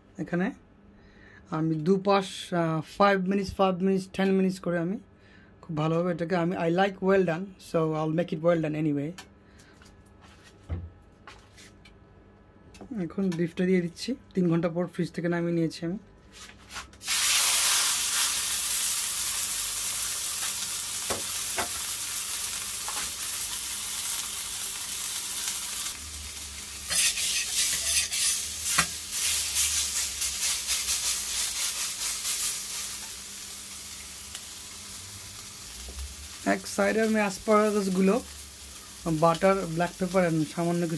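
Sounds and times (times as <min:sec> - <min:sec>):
steak sizzling on a griddle: 0:17.0 - 0:40.9
metal spatula scraping griddle: 0:26.8 - 0:32.6.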